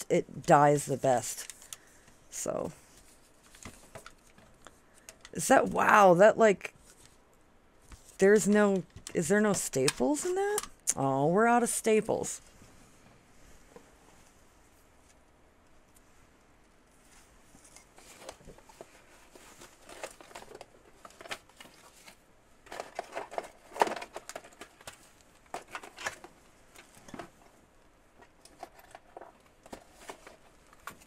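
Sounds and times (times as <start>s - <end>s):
rustling: 12.4s - 31.0s.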